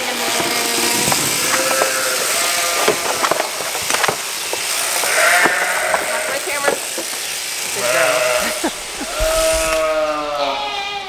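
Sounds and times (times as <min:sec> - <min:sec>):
sheep bleating: 0:00.2 - 0:11.0.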